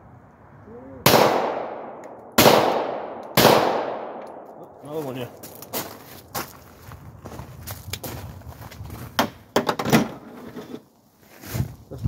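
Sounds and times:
pistol handling clicks: 1.9 - 2.6, 4.1 - 4.6.

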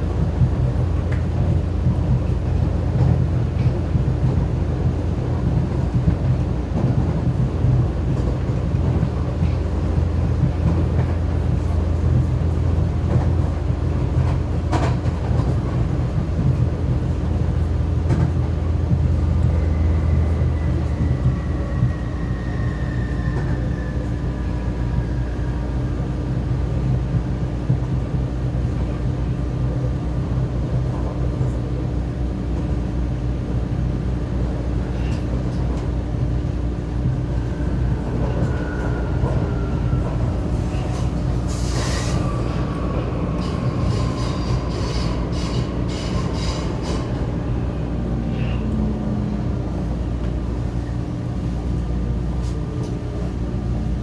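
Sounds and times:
train rumble and hum: 0.0 - 54.0.

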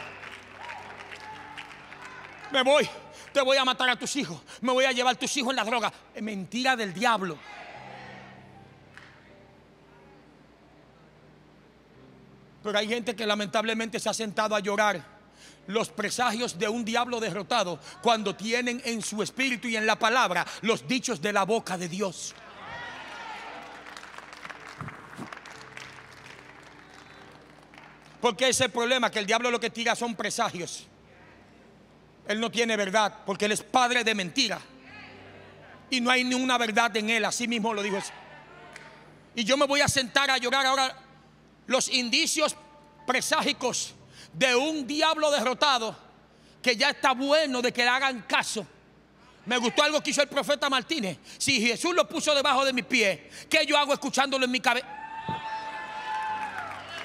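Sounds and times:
congregation applauding: 0.0 - 3.7, 22.3 - 28.8, 54.9 - 57.0.

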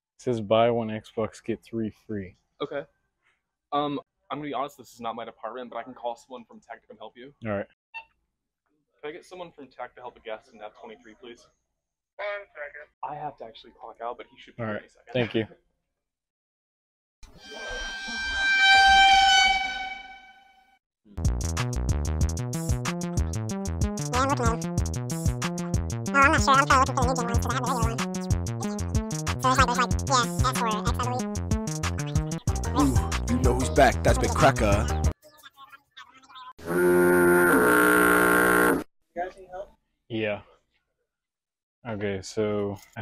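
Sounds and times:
sustained horn-like tone: 17.4 - 20.5, 36.6 - 38.8.

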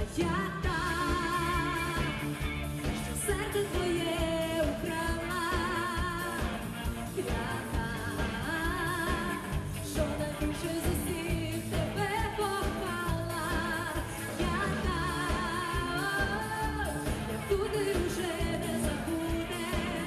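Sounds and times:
rock band playing: 0.0 - 20.0
woman singing pop-rock: 0.0 - 20.0.

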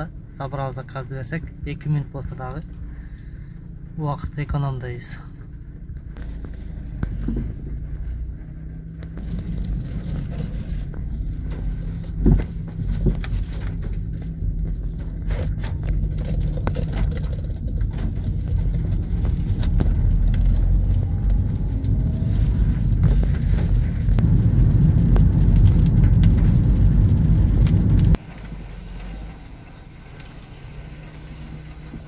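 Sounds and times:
car driving on wet road: 0.1 - 32.0.

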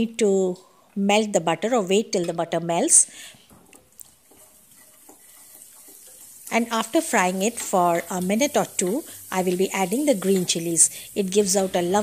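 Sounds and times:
garlic frying in butter: 3.7 - 12.0
spatula scraping a pan: 4.1 - 6.6.

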